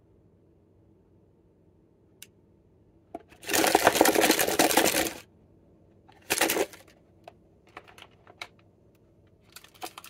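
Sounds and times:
plastic wrappers crinkling: 3.4 - 5.2, 6.2 - 6.9, 9.5 - 10.0.

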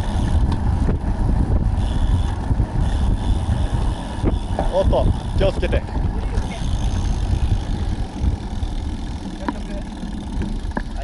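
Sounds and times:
tyre noise on asphalt: 0.0 - 11.0
wind buffeting microphone: 0.0 - 11.0.

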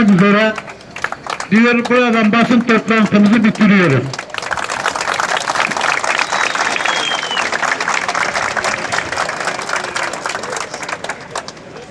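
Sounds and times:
crowd applauding: 0.1 - 11.9.

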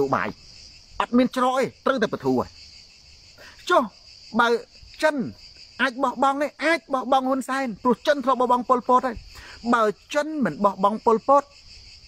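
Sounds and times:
man talking: 0.0 - 0.4, 1.0 - 2.6, 3.5 - 11.5
insects chirring: 0.0 - 12.0.

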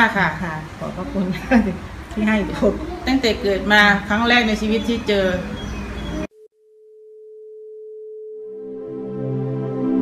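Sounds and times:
steady electronic tone: 5.6 - 10.0.

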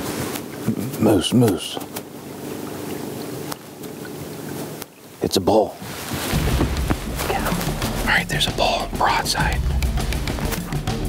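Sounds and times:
outboard motor humming: 0.0 - 5.2, 6.1 - 11.0.

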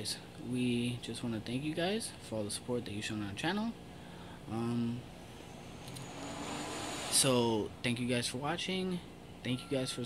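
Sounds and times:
passing vehicle rushing: 5.3 - 7.7.

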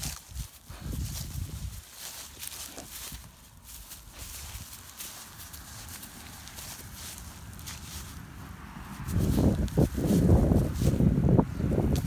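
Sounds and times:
footsteps crunching dry grass: 0.0 - 12.0
low microphone rumble: 5.3 - 12.0.

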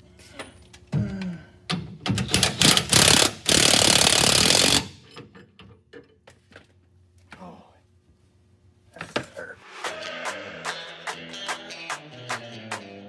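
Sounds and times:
impact wrench hammering: 1.7 - 5.1.

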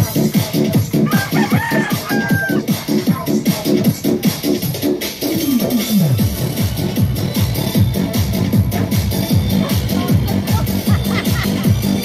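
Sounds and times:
electronic dance music: 0.0 - 12.0
rooster-like crow: 1.0 - 2.7.

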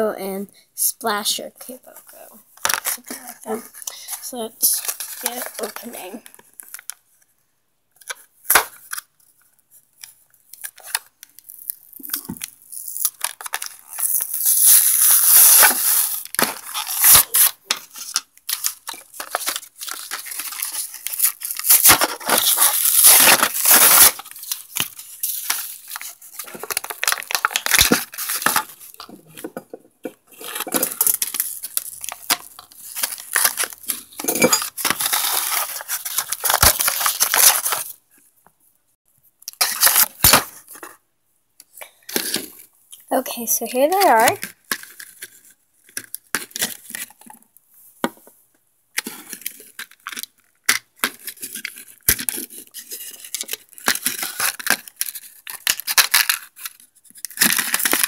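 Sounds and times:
plastic packaging crinkling: 2.6 - 7.0, 10.6 - 29.7, 30.3 - 38.0, 49.0 - 58.0
cardboard tearing: 4.7 - 6.1, 12.7 - 29.0, 30.3 - 37.9.

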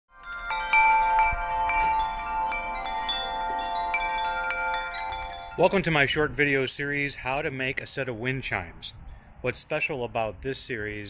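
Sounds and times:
metal wind chime ringing: 0.1 - 6.8.

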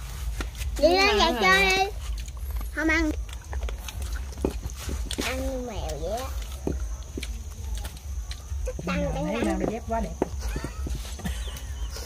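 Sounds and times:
people eating with crunches: 0.0 - 12.0.

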